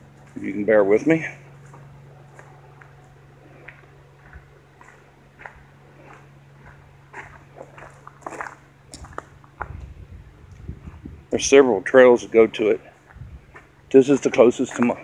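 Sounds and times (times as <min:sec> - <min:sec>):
footsteps on gravel and dirt: 0:00.0 - 0:00.6, 0:01.5 - 0:11.2, 0:12.9 - 0:15.0
steady low hum: 0:00.0 - 0:15.0.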